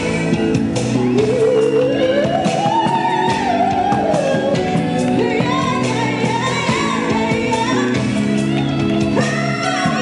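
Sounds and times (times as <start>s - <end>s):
band playing keyboards and guitars: 0.0s - 10.0s
woman singing: 0.0s - 10.0s.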